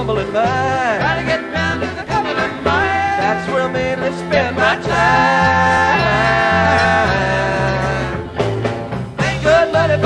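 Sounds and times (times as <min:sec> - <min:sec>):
singing: 0:00.0 - 0:08.2, 0:09.2 - 0:10.0
live rock band playing: 0:00.0 - 0:10.0.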